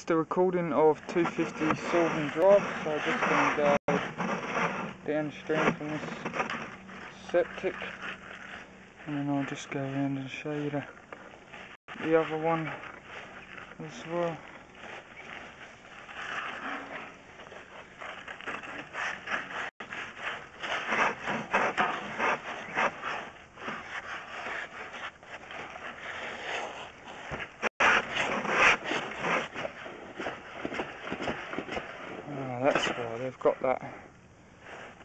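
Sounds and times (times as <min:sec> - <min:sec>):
camera rod scraping in pipe: 0:00.8 - 0:33.2.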